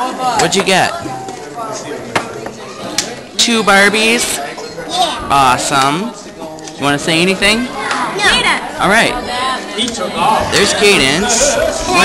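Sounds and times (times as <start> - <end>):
people chattering: 0.0 - 12.0.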